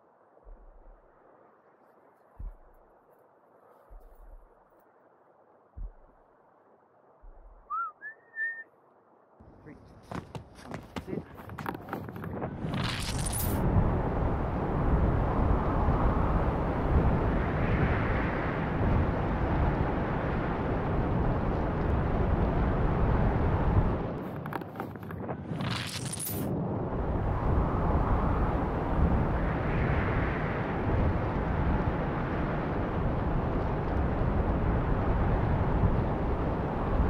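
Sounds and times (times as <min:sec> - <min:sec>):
wind rushing over microphone: 0:02.3 - 0:03.0, 0:10.1 - 0:37.0.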